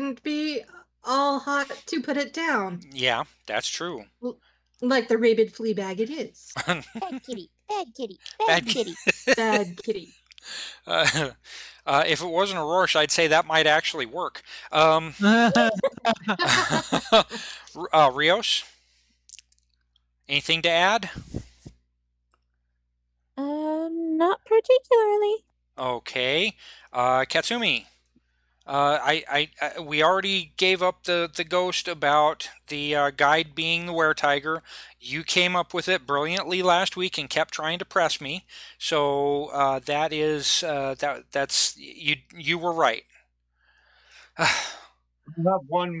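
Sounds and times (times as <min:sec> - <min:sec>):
person speaking: 0:01.3 - 0:02.1, 0:02.7 - 0:04.1, 0:06.5 - 0:18.6, 0:20.3 - 0:21.7, 0:23.4 - 0:27.8, 0:28.7 - 0:34.4, 0:35.0 - 0:43.0, 0:45.3 - 0:46.0
person sighing into a microphone: 0:17.3 - 0:17.7.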